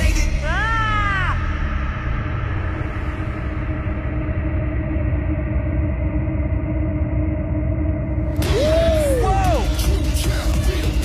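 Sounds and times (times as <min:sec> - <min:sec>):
low rumbling music: 0:00.0 - 0:11.0.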